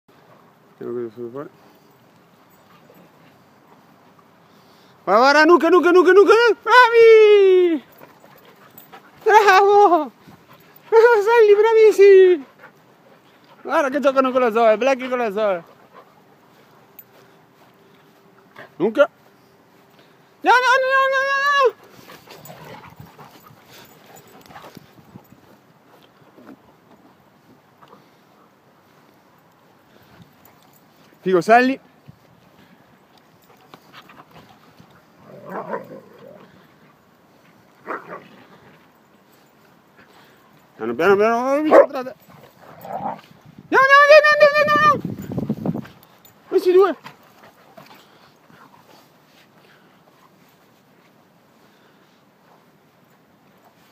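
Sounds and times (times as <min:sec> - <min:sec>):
dogs breathing: 0:07.8 - 0:09.3, 0:10.1 - 0:11.0, 0:12.4 - 0:13.7, 0:15.6 - 0:20.4, 0:21.8 - 0:26.6, 0:27.3 - 0:31.2, 0:31.9 - 0:35.3, 0:45.1 - 0:50.9
dogs scuffling: 0:21.7 - 0:27.2.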